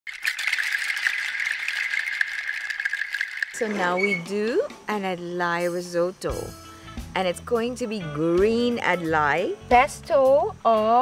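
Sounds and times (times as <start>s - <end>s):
insects trilling: 0.1s - 6.5s.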